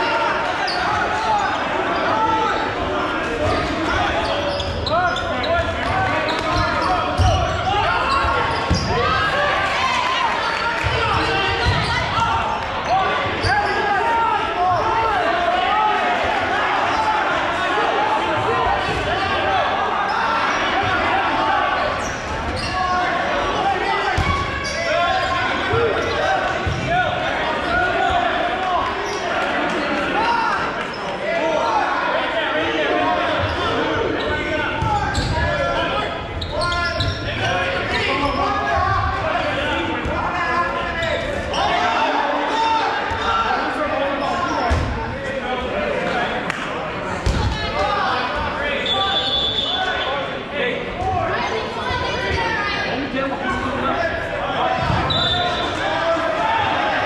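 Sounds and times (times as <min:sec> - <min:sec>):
players shouting and chatting: 0:00.0 - 0:57.0.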